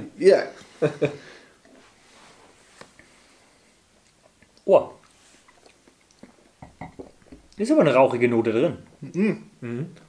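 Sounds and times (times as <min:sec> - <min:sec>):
people sipping and swallowing: 0:03.9 - 0:07.6.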